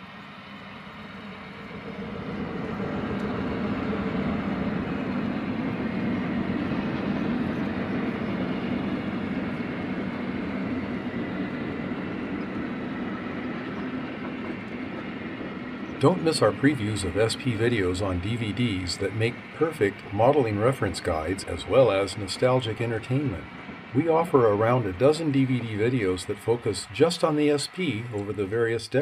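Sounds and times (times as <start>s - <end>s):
train rolling on rails: 0.0s - 29.0s.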